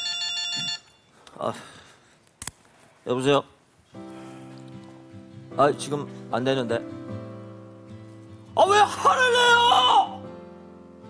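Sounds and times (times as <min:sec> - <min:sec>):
phone ringtone: 0:00.0 - 0:01.2.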